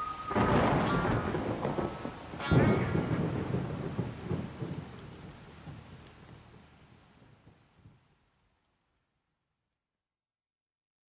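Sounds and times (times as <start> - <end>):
rumbling thunderclaps: 0.0 - 8.0
rain: 0.0 - 9.5.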